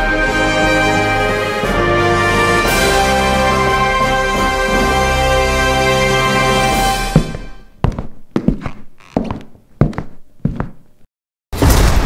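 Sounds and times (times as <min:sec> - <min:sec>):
heavy footsteps on hard floor: 0:06.8 - 0:11.1.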